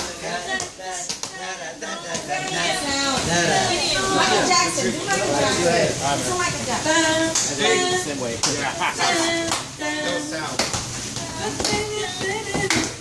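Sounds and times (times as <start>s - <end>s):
people's voices overlapping: 0.0s - 13.0s
hand claps: 8.4s - 9.7s, 10.5s - 13.0s.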